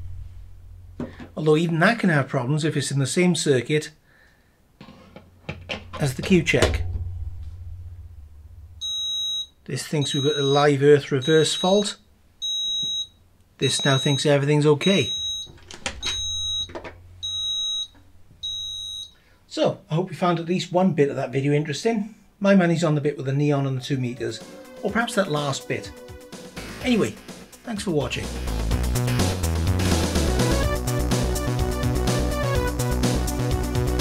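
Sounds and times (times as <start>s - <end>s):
low steady hum: 0.0s - 2.0s, 4.0s - 19.4s
electronic beeps: 8.8s - 19.2s, 25.2s - 25.7s.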